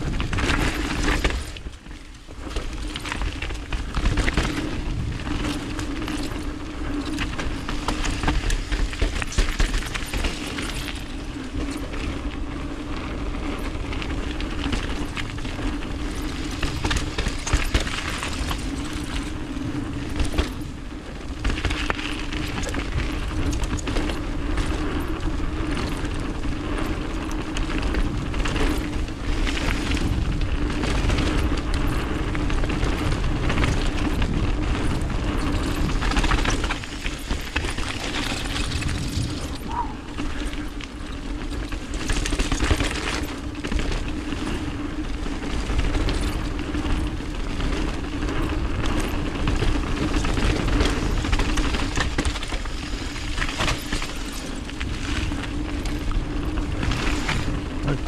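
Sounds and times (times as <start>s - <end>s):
bike rattling and knocking: 0.0s - 58.0s
tyres rolling on dirt and gravel: 0.0s - 58.0s
wind buffeting microphone: 0.0s - 58.0s.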